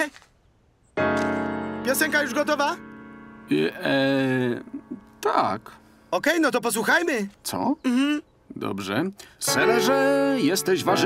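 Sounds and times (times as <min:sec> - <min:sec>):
piano chord ringing: 0:01.0 - 0:06.2, 0:09.4 - 0:11.0.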